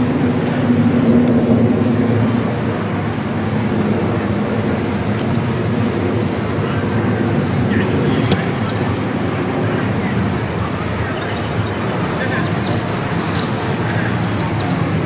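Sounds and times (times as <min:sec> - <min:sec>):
traffic hum: 0:00.0 - 0:15.0
indistinct voices of people: 0:05.7 - 0:15.0.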